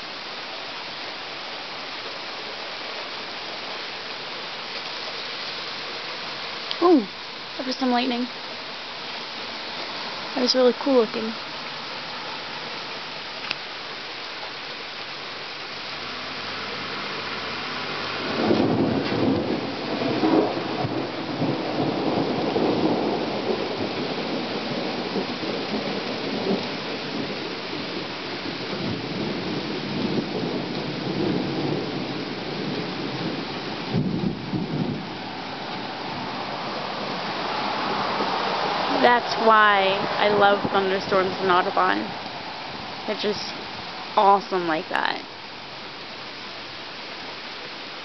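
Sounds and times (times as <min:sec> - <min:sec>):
steady rain falling: 0:00.0 - 0:48.0
thunder rumbling: 0:16.2 - 0:45.3.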